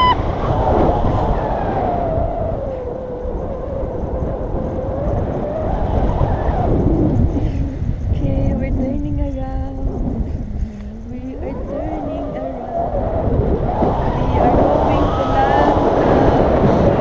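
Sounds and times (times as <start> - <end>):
wind buffeting microphone: 0.0 - 17.0
held vocal tone: 7.6 - 13.0.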